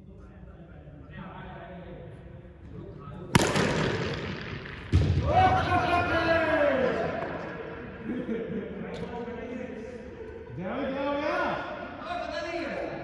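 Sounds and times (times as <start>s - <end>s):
cricket bat striking ball: 3.3s - 5.3s
man shouting: 5.2s - 7.2s.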